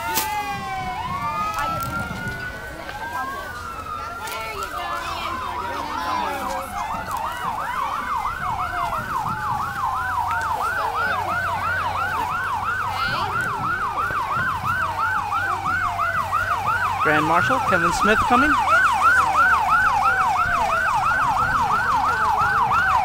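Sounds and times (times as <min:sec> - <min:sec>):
siren yelping: 0:00.0 - 0:23.0
slower wailing siren tone: 0:00.0 - 0:23.0.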